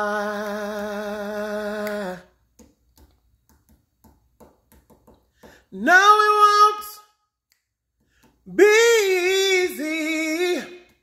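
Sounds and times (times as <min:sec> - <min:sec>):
man singing unaccompanied: 0:00.0 - 0:02.4, 0:05.7 - 0:07.0, 0:08.4 - 0:11.0.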